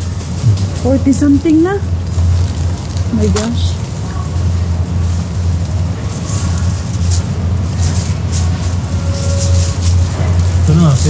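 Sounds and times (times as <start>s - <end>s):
chiller cases humming: 0.0s - 11.0s.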